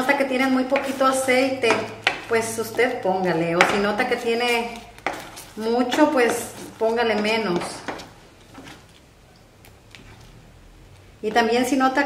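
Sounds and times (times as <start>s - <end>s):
spoon stirring thick puree: 0.0s - 10.4s.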